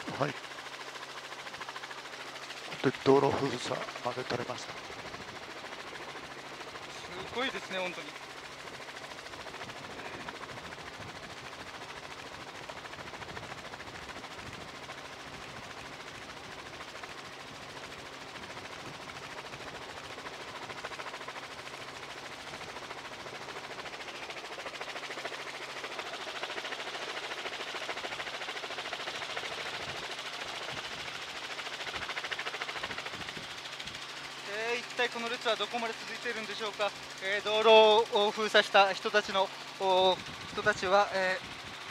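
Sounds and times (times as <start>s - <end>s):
engine low hum: 0.0s - 41.9s
helicopter rotor blades beating: 0.0s - 41.9s.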